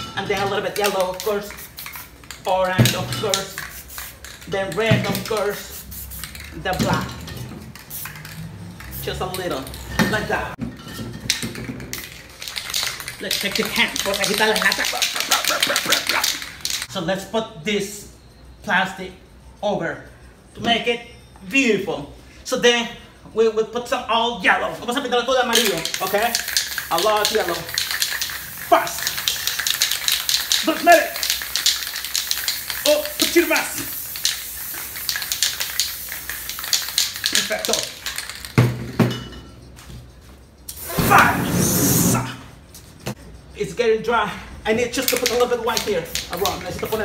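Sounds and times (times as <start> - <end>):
spray can being shaken: 0.0 - 9.8, 11.3 - 16.9, 25.4 - 38.7, 40.6 - 42.2, 44.9 - 47.0
spray can hissing: 0.7 - 6.8, 7.7 - 9.6, 11.9 - 16.9, 25.4 - 38.6, 40.7 - 42.2, 44.9 - 47.0.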